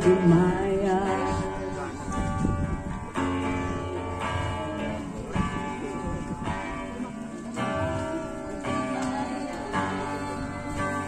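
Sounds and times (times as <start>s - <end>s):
acoustic guitar chords: 0.0s - 9.6s.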